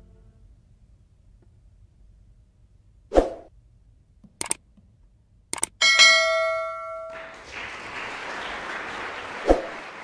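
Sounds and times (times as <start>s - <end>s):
quick clicks: 4.3s - 4.6s, 5.5s - 5.8s
bright bell ding: 5.8s - 7.3s.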